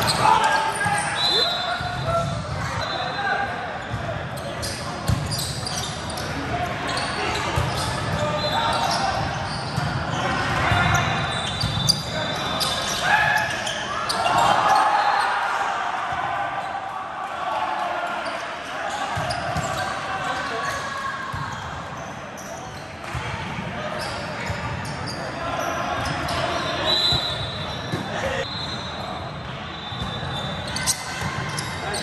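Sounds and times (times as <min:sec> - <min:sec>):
players shouting and chatting: 0:00.0 - 0:32.0.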